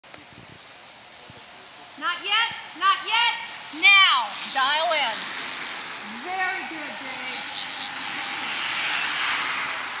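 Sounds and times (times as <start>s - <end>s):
bike tyres and air rushing past: 3.4s - 6.1s, 7.2s - 10.0s.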